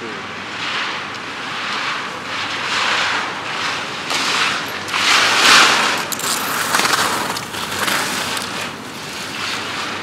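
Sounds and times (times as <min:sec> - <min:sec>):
ski edges scraping on hard snow: 0:02.5 - 0:10.0.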